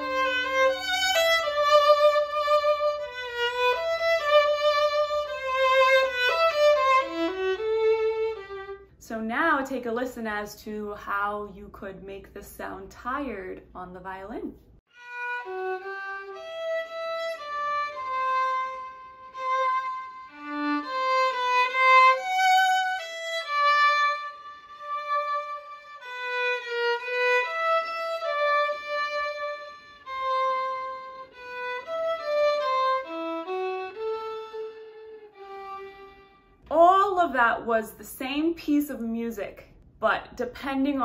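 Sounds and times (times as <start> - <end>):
solo violin slow melody: 0.0 - 8.9, 14.9 - 36.7.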